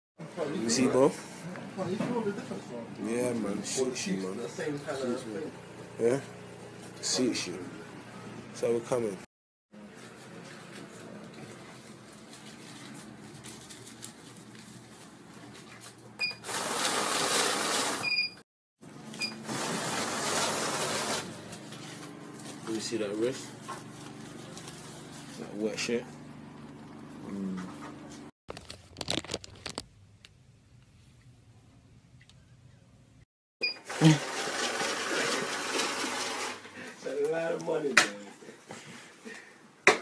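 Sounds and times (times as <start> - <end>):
banknote counting machine riffling: 16.4 - 18.0, 19.4 - 21.4, 33.8 - 36.6.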